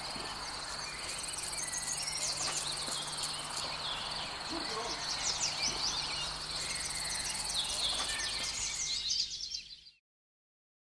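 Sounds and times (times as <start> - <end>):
insects chirping: 0.0 - 9.0
gliding bird-like chirps: 0.0 - 9.8.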